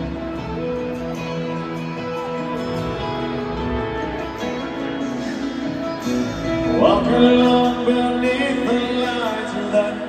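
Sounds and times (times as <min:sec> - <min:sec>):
live country band playing: 0:00.0 - 0:10.0.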